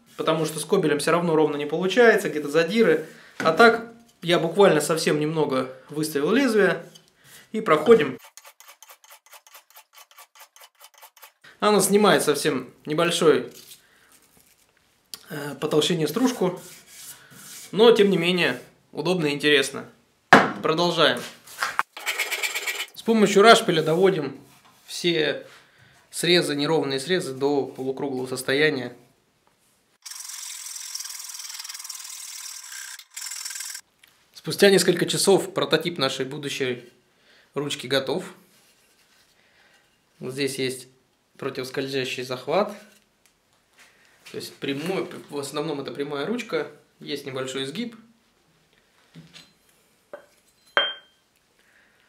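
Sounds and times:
hand plane scraping wood: 7.9s - 11.4s
rasp filing wood: 8.2s - 11.4s.

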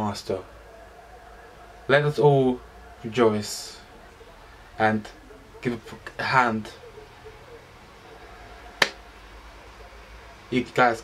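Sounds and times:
hand clap: 8.8s - 9.0s.

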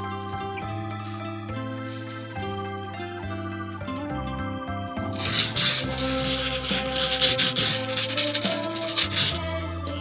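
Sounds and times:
organ music: 0.0s - 9.3s
plastic spoon rasping on sand: 5.2s - 9.4s.

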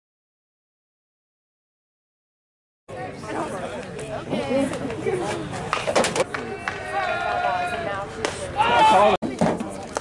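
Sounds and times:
spectators talking and calling out: 2.9s - 10.0s.

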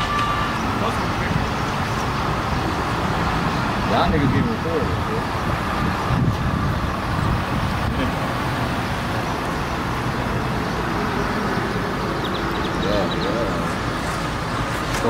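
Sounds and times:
road traffic: 0.0s - 15.0s.

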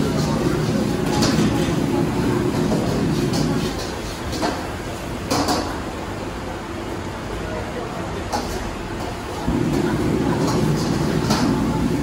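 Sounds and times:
busy kitchen background noise: 0.0s - 12.0s.

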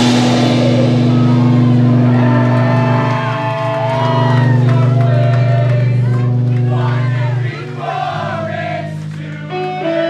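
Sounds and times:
sustained droning guitar chord: 0.0s - 10.0s.

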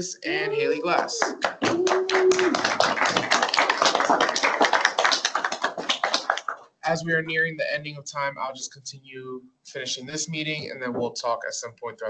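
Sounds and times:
people applauding: 0.0s - 6.7s.

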